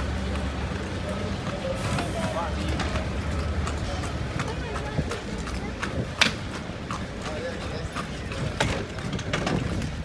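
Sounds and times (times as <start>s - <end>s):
horse hooves clip-clopping on road: 0.0s - 10.0s
carriage rumbling: 5.4s - 10.0s.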